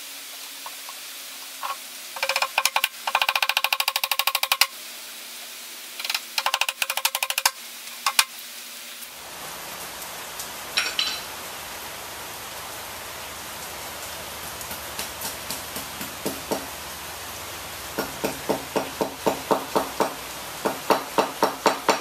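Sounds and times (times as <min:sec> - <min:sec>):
steady background hiss: 0:00.0 - 0:22.0
hammer tapping on wooden pallet: 0:01.6 - 0:04.7, 0:14.7 - 0:16.7, 0:18.0 - 0:22.0
hammer tapping on concrete: 0:14.7 - 0:16.7, 0:18.0 - 0:22.0.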